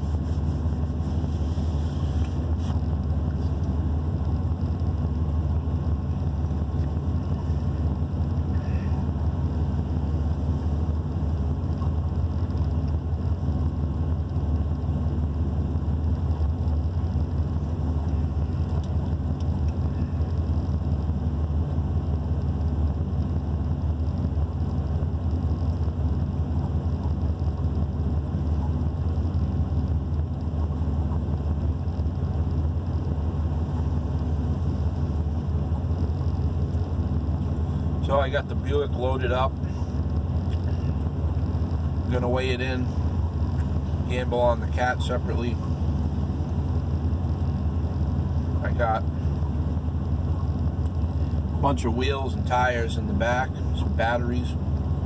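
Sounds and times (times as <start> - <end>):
truck engine idling: 0.0 - 55.0.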